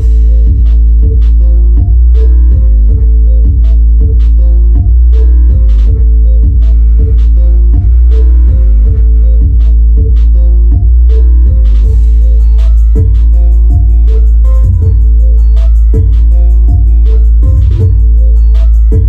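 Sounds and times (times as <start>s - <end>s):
deep bass: 0.0s - 19.0s
sharp beat: 0.0s - 19.0s
sustained keyboard chords: 0.0s - 19.0s.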